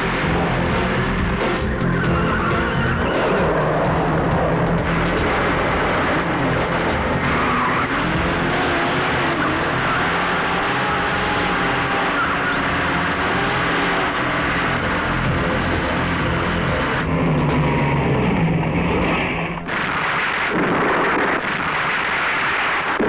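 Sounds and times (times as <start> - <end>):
car engines running hard: 0.0 - 23.0.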